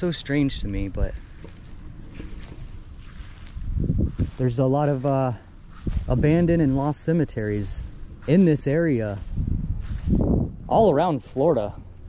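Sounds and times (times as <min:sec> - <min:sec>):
insect pulsing trill: 0:00.0 - 0:12.0
low microphone rumble: 0:00.0 - 0:12.0.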